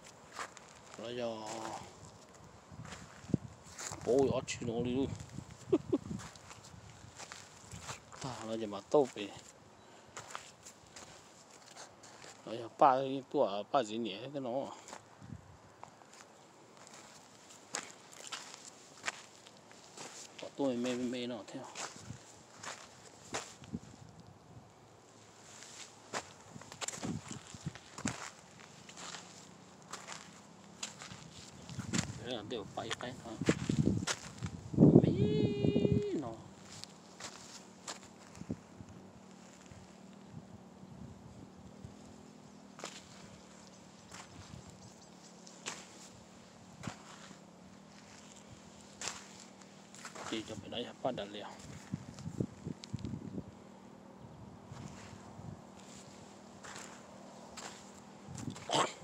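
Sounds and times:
footsteps crunching on sandy soil: 0.0 - 24.3, 25.0 - 54.0, 54.7 - 59.0
faint steady hum: 0.0 - 59.0.

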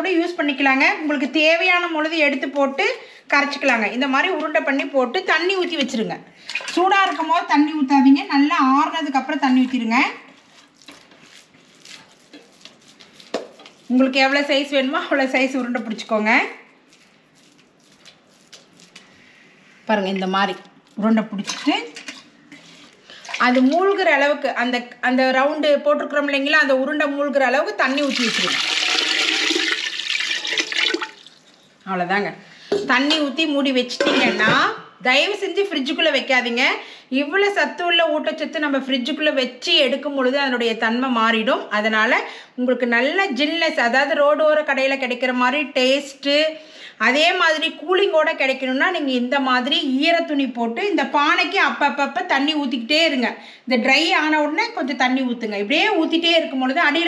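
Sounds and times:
woman talking: 0.0 - 10.3, 13.9 - 16.7, 19.9 - 22.0, 23.3 - 28.7, 31.8 - 57.0
water pouring into clay pot: 27.9 - 31.7.

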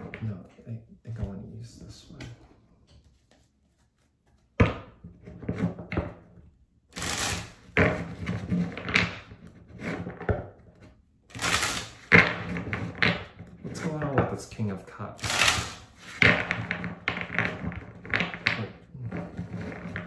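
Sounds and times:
cards being shuffled: 3.0 - 4.6, 7.0 - 7.7, 11.3 - 12.2, 15.2 - 16.3.

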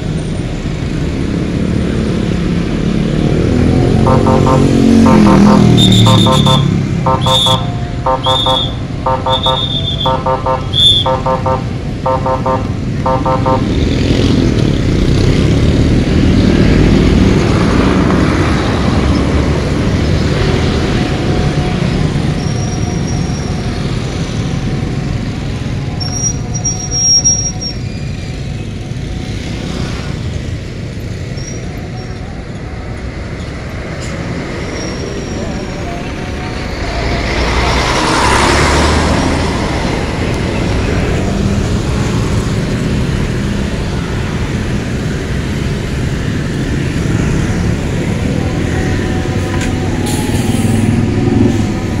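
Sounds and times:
road traffic rumble: 0.0 - 52.0
truck passing close: 32.4 - 52.0.

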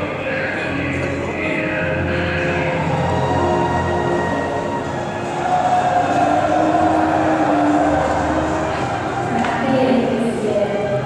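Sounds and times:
crowded hall din: 0.0 - 11.0.

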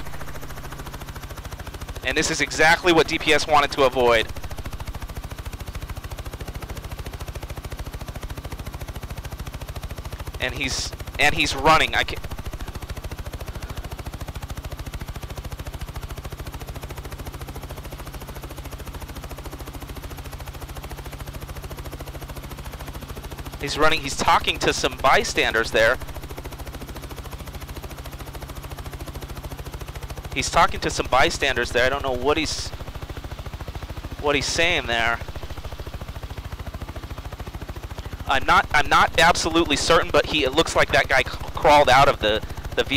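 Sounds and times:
steady low hum: 0.0 - 7.3, 10.0 - 16.2, 22.7 - 42.9
helicopter rotor beating: 0.0 - 42.9.

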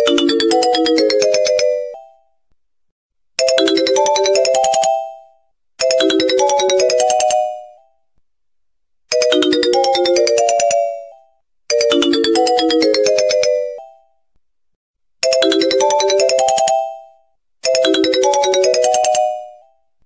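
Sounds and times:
chiming ringtone melody: 0.0 - 2.4, 3.4 - 8.0, 9.1 - 14.2, 15.2 - 19.8.

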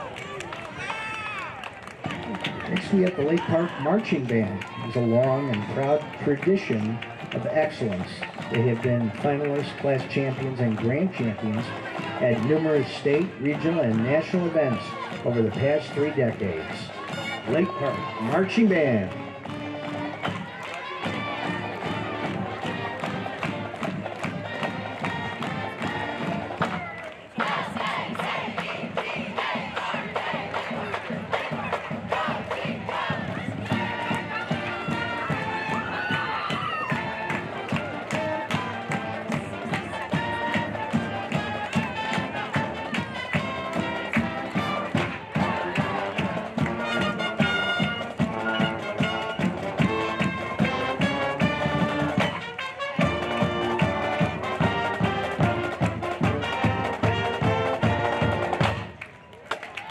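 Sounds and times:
marching band playing: 0.0 - 59.2.

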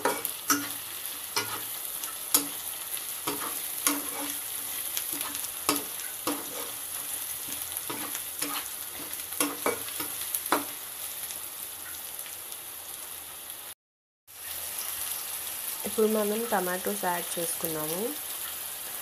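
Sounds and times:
metal spatula scraping a pan: 0.0 - 10.7
vegetables sizzling in a pan: 0.0 - 19.0.

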